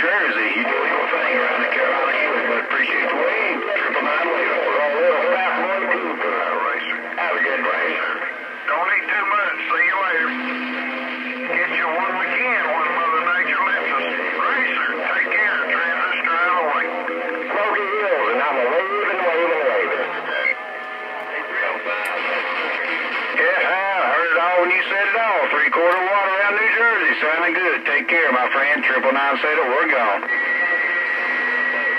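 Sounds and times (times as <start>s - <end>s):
voices over radio speaker: 0.0s - 31.9s
steady low hum: 3.8s - 23.4s.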